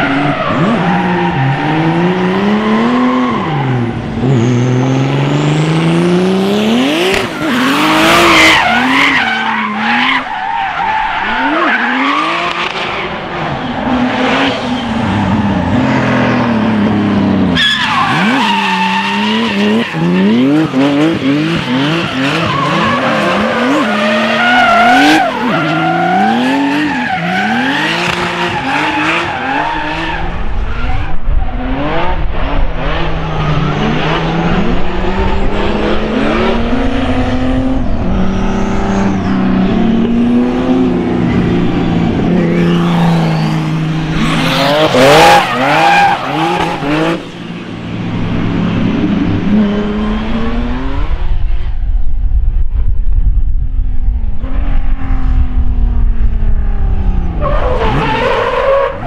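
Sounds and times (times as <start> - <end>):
tyres squealing on asphalt: 0.0 - 4.8, 7.1 - 16.0, 17.4 - 31.2, 41.3 - 47.8, 57.4 - 59.0
car engines revving: 0.0 - 59.0.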